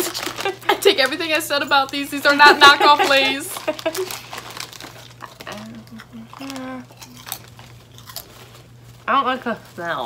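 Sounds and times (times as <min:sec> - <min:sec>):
plastic crisp bag crinkling: 0:00.0 - 0:10.0.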